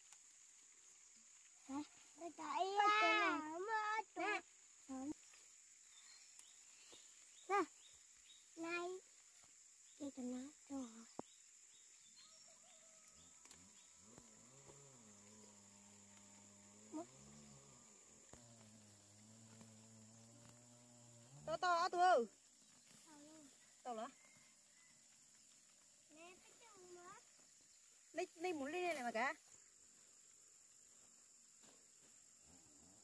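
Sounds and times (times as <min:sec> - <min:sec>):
young children calling: 0:02.2 - 0:04.4.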